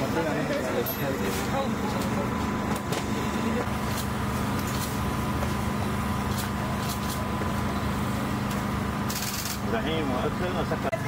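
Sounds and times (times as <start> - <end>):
low machine hum: 0.9 - 11.0.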